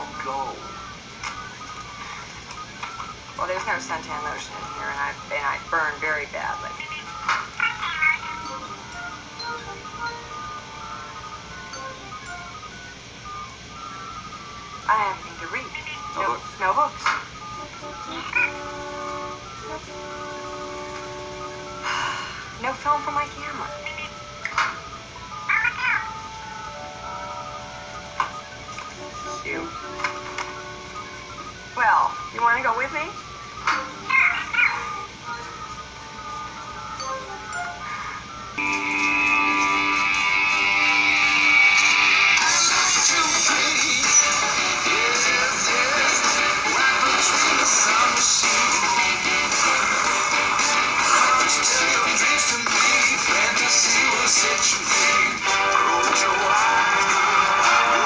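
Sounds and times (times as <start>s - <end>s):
electronic robot chirp: 0.0s - 55.4s
faint background music: 0.0s - 58.0s.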